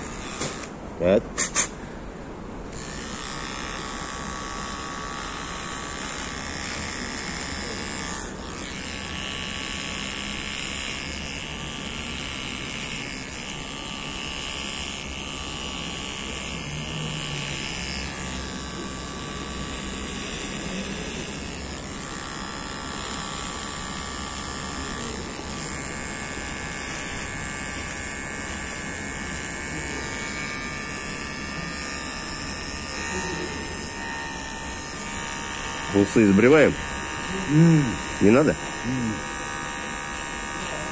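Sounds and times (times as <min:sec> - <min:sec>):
electric razor shaving: 0:00.0 - 0:01.2, 0:02.7 - 0:40.9.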